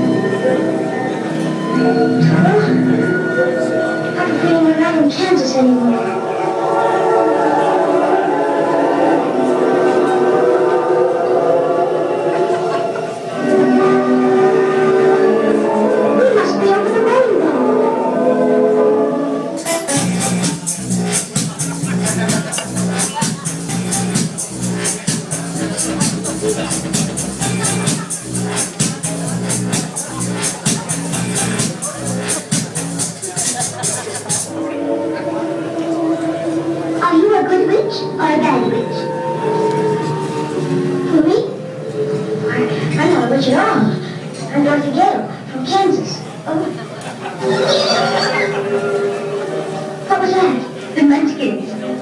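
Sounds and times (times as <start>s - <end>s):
choir singing sustained notes: 5.9s - 16.3s, 34.5s - 42.5s
dance beat: 19.6s - 34.5s.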